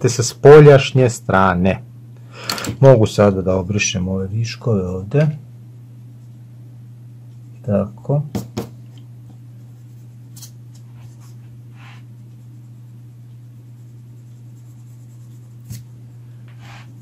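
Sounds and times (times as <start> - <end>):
low hum: 1.2 - 8.2, 8.8 - 17.0
small knock: 8.3 - 8.8
eraser rubbing on paper: 9.6 - 17.0.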